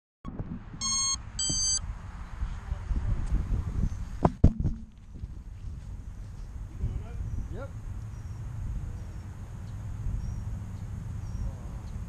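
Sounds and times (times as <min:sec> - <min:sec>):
short electronic beeps: 0:00.8 - 0:01.8.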